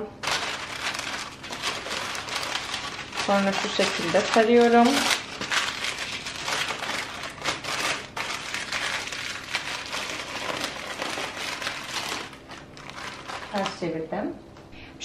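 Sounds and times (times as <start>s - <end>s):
baking paper crinkling: 0.2s - 14.0s.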